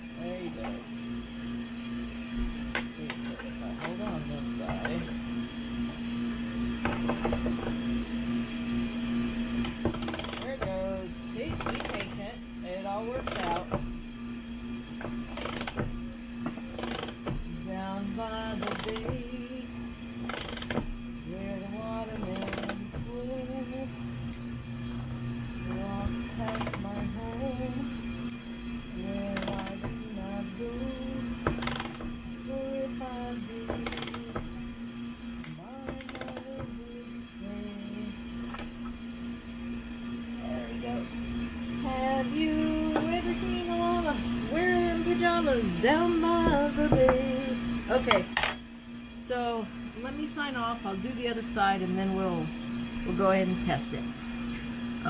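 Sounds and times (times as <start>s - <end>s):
air conditioner humming: 0.0s - 55.0s
ratchet wrench clicking: 9.6s - 10.5s, 11.5s - 12.2s, 15.3s - 15.8s, 16.7s - 17.3s, 18.6s - 19.2s, 20.2s - 20.9s, 22.1s - 22.8s, 26.5s - 27.2s, 29.4s - 29.8s, 31.4s - 32.0s, 33.8s - 34.4s, 35.4s - 36.7s
song with singing: 25.6s - 28.0s, 28.9s - 31.7s, 35.4s - 38.2s, 41.8s - 48.3s.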